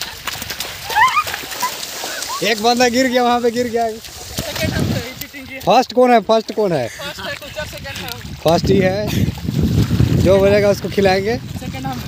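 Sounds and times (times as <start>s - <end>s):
bare feet splashing through water: 0.0s - 12.0s.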